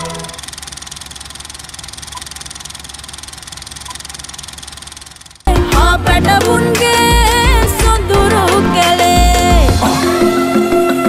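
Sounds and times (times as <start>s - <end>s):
film projector clatter: 0.0s - 5.5s.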